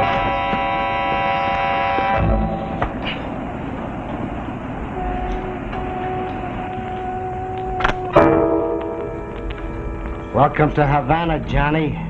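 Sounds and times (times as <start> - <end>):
horn-like held tone: 0.0 - 2.8, 4.9 - 10.7
street traffic: 0.0 - 11.8
sustained music chord: 7.4 - 10.8.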